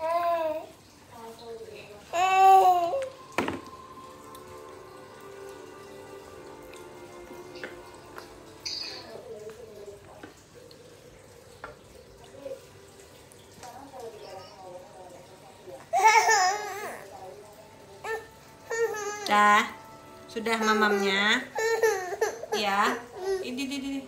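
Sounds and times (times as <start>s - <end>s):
baby vocal sounds: 2.0s - 3.4s.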